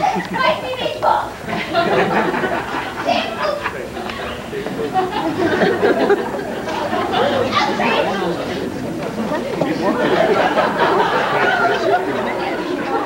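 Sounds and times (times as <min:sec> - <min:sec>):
chatter of many voices: 0:00.0 - 0:13.0.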